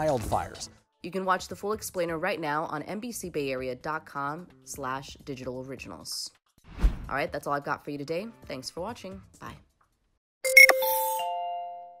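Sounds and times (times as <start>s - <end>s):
chime notes: 10.5s - 12.0s.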